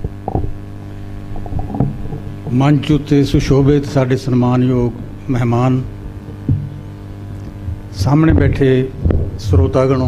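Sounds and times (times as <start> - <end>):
electrical hum from sound system: 0.0 - 10.0.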